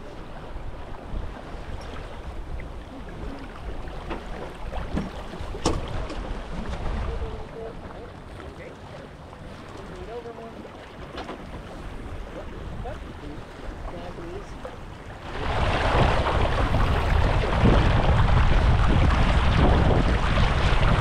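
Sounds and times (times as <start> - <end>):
wind on microphone: 0.0 - 8.4, 11.5 - 21.0
water washing along hull: 0.0 - 21.0.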